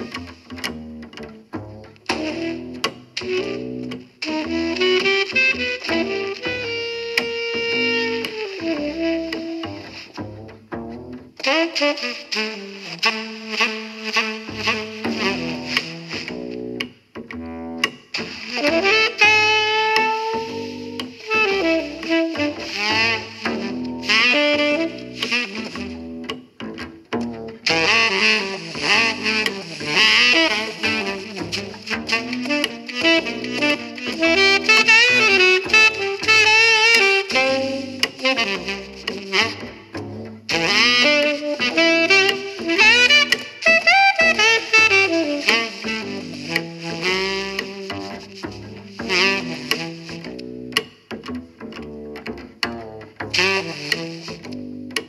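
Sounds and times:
saxophone-led jazz with double bass: 0:00.0 - 0:55.0.

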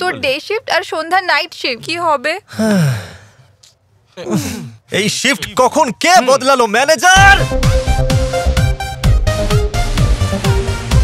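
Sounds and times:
man sighing: 0:02.5 - 0:04.8
man speaking: 0:04.2 - 0:07.5.

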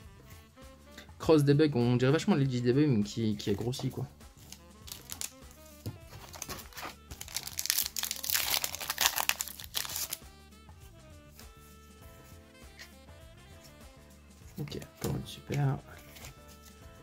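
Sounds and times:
background music: 0:00.0 - 0:17.0
foil wrapper crinkling and tearing: 0:04.4 - 0:05.5, 0:06.1 - 0:10.2.

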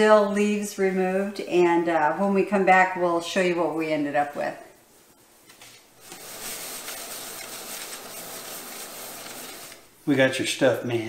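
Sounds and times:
dry leaves rustling in strainer: 0:06.0 - 0:09.9.

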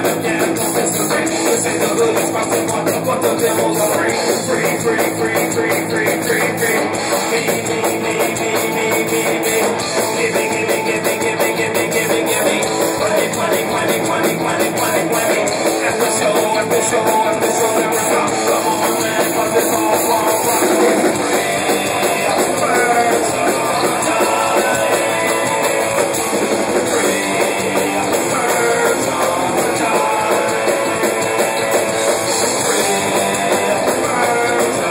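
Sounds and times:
drum kit: 0:00.0 - 0:34.9
electric guitar: 0:00.0 - 0:34.9
rock band playing loudly: 0:00.0 - 0:34.9.

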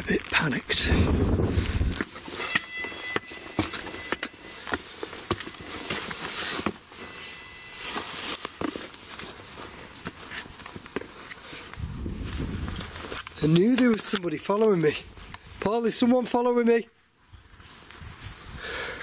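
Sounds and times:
footsteps on rough ground: 0:00.0 - 0:16.4, 0:17.2 - 0:18.6
clothing rustle: 0:01.6 - 0:14.0.

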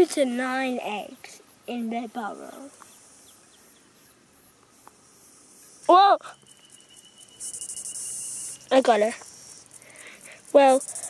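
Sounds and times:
high-pitched insect chirping: 0:00.0 - 0:11.0.

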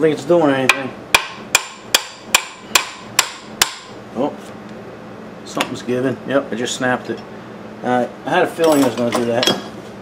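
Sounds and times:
hammer tapping on metal: 0:00.7 - 0:03.9.

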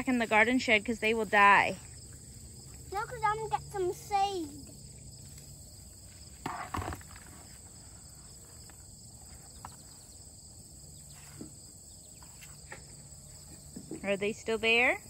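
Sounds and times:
insects chirring: 0:00.0 - 0:15.0.

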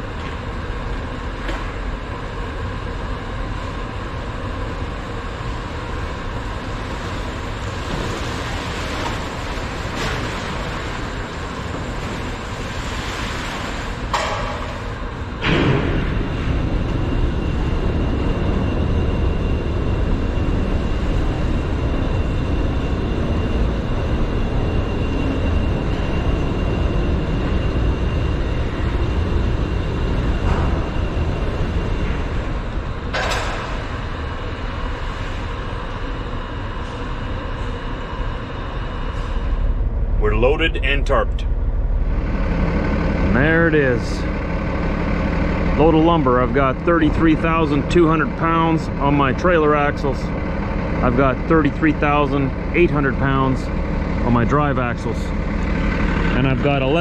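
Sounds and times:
machinery rumble and hum: 0:00.0 - 0:57.0
thin high whine: 0:13.6 - 0:57.0.

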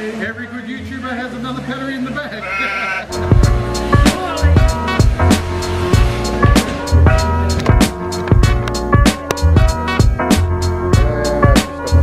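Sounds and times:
woman laughing: 0:02.4 - 0:03.1.

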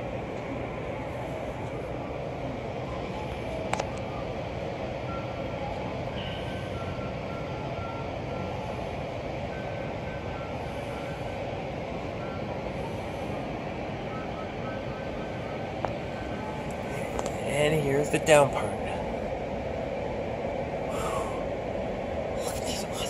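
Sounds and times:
faint electronic beeps: 0:01.0 - 0:17.2.

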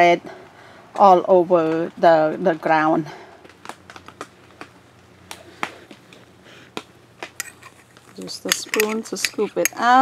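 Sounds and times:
metal spoon clinking on glass jar: 0:08.4 - 0:10.0.

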